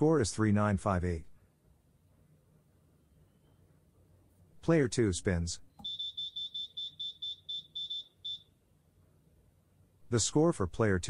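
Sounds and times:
short high buzzer beeps: 5.8s - 8.5s.

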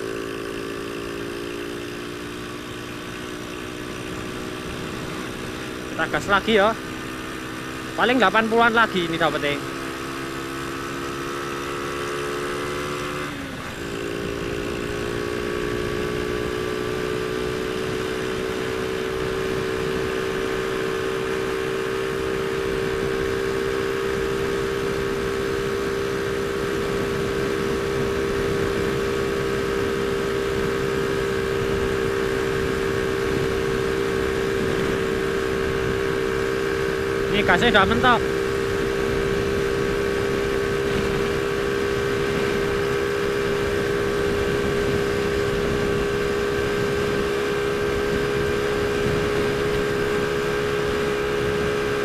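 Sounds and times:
motorcycle engine at full throttle: 0.0s - 52.0s.

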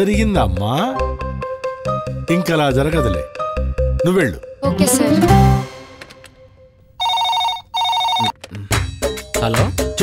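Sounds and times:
desk phone trilling ring: 7.0s - 8.4s.

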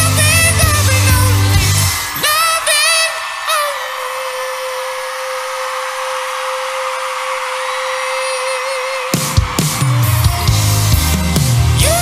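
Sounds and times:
person singing: 0.0s - 9.5s, 11.4s - 12.0s
crowd screaming and cheering: 0.0s - 12.0s.

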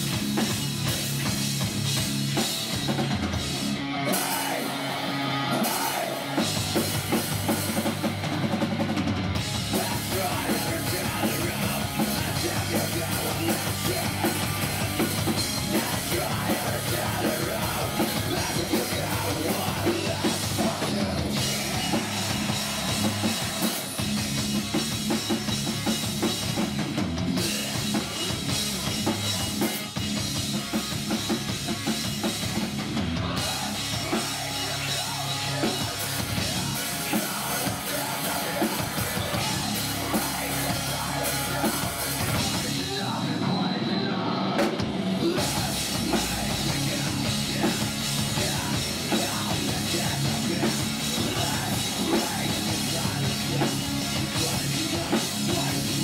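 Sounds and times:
heavy metal band playing live: 0.0s - 56.0s.

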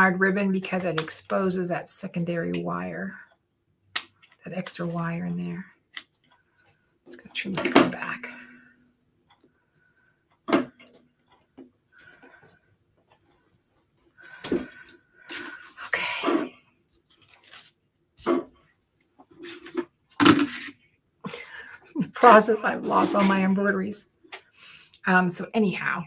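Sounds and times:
clicks and knocks of hands working: 3.9s - 4.4s.

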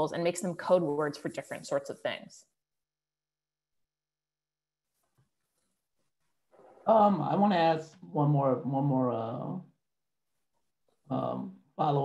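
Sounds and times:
man speaking: 6.8s - 9.7s, 11.1s - 12.0s.

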